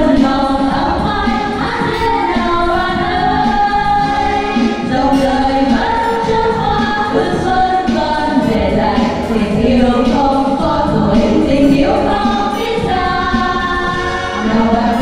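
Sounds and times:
backing music: 0.0s - 15.0s
women singing together: 0.0s - 15.0s.

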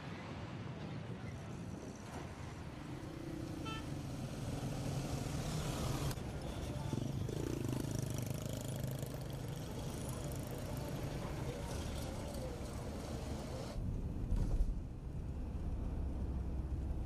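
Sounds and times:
traffic driving past: 0.0s - 13.8s.

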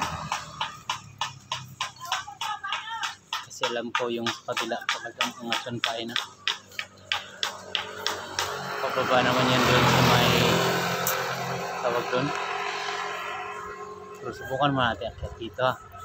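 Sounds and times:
motor vehicle passing close: 0.0s - 1.9s, 6.6s - 16.0s
music with a beat: 0.0s - 8.5s.

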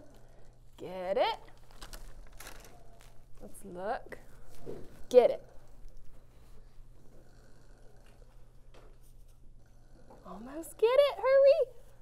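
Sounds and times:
low room hum: 0.0s - 12.0s
faint paper rustling: 1.5s - 3.6s.

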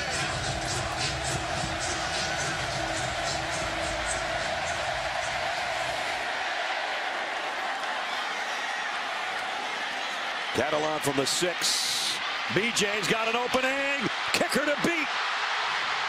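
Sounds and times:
music: 0.0s - 6.2s
stadium crowd cheering: 0.0s - 16.0s.

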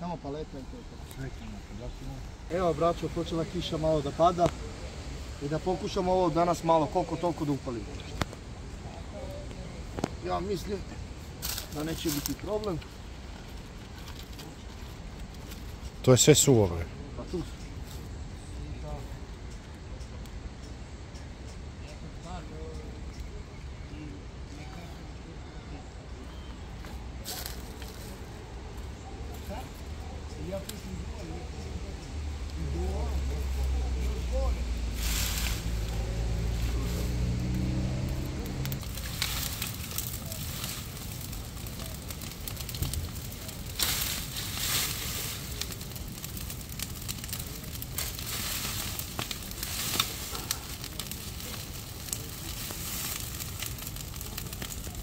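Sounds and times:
bonfire burning with crackles: 0.0s - 55.0s
dry brush rustling: 10.1s - 15.9s, 26.8s - 28.3s, 33.0s - 37.8s, 38.8s - 55.0s.

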